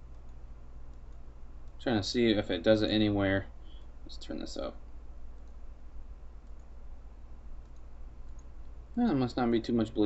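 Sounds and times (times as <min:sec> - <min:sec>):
steady low hum: 0:00.0 - 0:10.0
computer mouse clicks: 0:00.1 - 0:01.8, 0:05.3 - 0:05.7, 0:06.4 - 0:06.8, 0:07.6 - 0:08.8.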